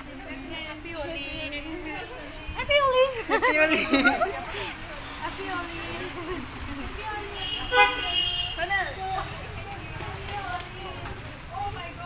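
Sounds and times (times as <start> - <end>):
car horn honking: 7.4 - 8.7.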